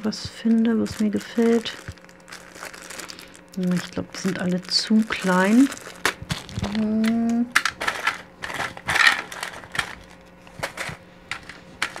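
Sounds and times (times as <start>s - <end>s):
plastic bag crinkling: 0.0s - 12.0s
person humming: 6.5s - 7.6s.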